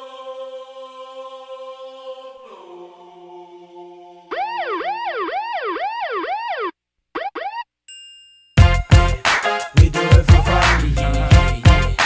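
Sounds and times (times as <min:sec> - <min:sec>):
siren yelp: 0:04.3 - 0:07.7.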